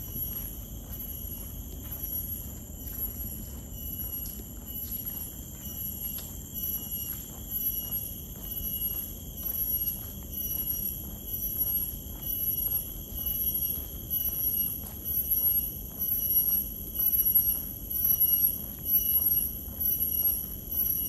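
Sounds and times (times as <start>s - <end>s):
faint footsteps: 0.0s - 21.0s.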